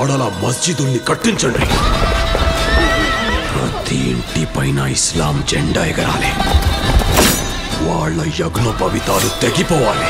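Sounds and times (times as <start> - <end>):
dramatic orchestral film music: 0.0 - 10.0.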